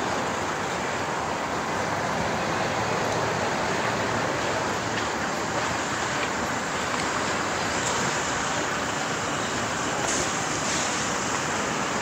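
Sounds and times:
distant traffic: 0.0 - 12.0
wind: 0.0 - 12.0.

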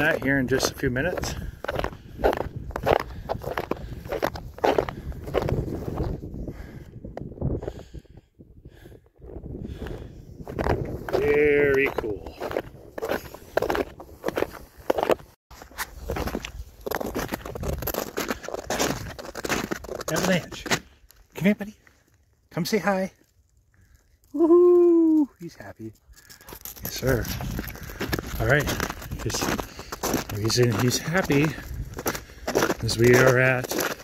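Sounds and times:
footsteps in snow: 0.0 - 6.2, 10.4 - 22.0, 25.5 - 34.0.

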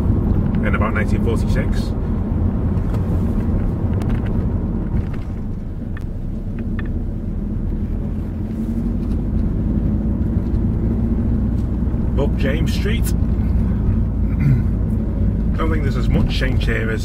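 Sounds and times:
car engine and road rumble: 0.0 - 17.0.

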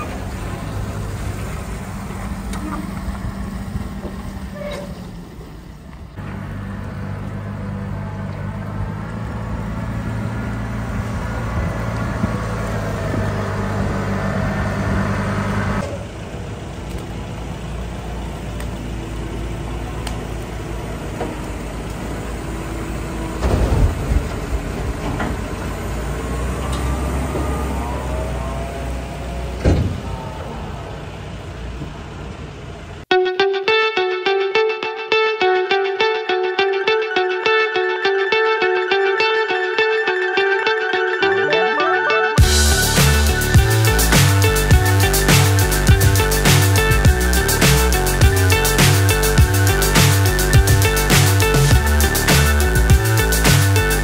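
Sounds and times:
diesel engine running: 0.0 - 33.1, 42.4 - 54.0
hydraulic whine: 42.4 - 54.0.

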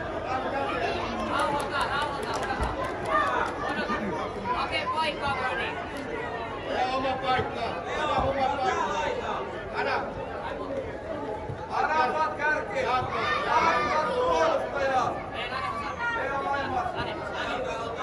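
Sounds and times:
many voices chattering and calling: 0.0 - 18.0.

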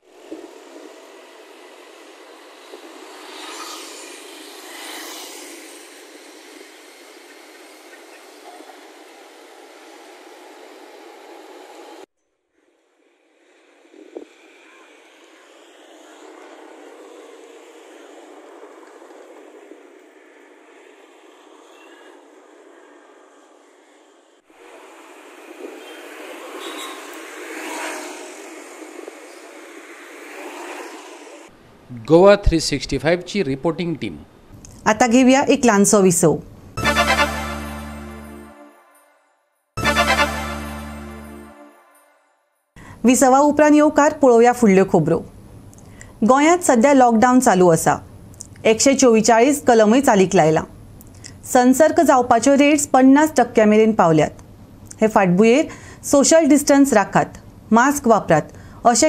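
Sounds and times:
scooters and cars passing: 0.0 - 31.6
street traffic noise: 0.0 - 39.1, 42.8 - 59.0.

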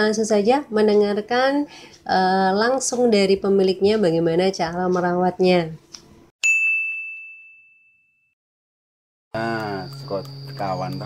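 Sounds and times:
bright bell-like ding: 6.4 - 8.3.

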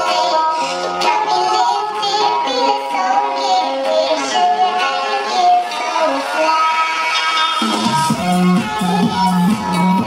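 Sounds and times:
music with singing voice: 0.0 - 10.0.

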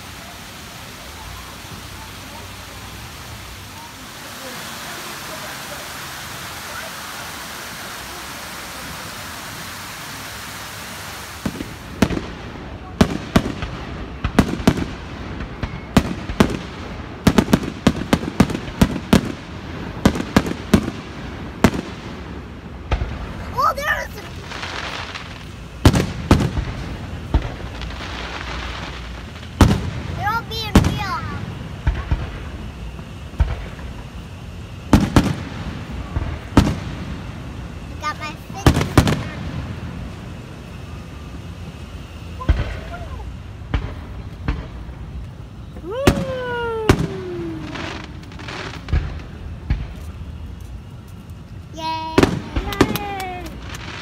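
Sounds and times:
fireworks bangs and crackles: 0.0 - 54.0.

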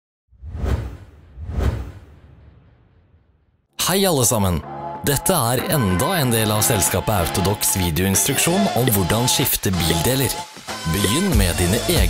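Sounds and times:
whoosh with deep rumble: 0.3 - 3.6.

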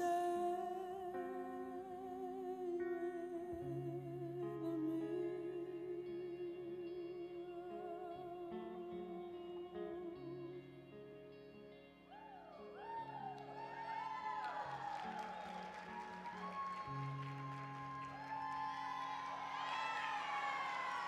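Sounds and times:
sustained guitar chords: 0.0 - 21.0
audience whooping and cheering: 12.1 - 21.0.

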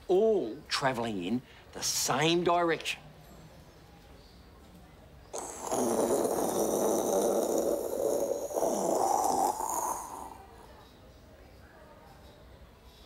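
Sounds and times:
man imitating jet plane: 5.4 - 10.4.

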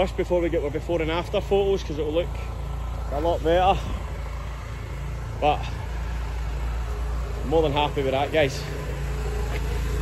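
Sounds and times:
pressure washer engine running: 0.0 - 10.0.

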